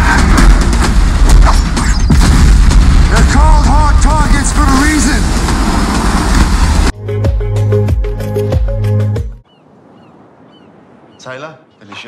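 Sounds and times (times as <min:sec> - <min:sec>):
deep booming film score: 0:00.0 - 0:07.0.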